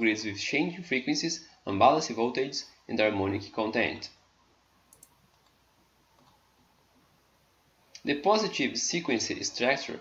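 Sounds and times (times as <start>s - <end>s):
faint quick clicks: 4.9s - 5.6s.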